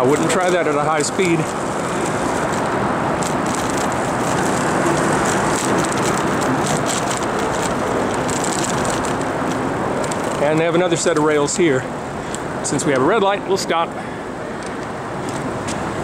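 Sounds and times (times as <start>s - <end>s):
road and traffic noise: 0.0s - 16.0s.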